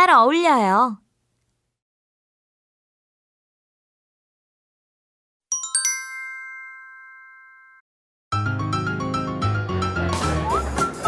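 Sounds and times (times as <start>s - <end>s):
bell-like chime ringing: 5.5s - 7.8s.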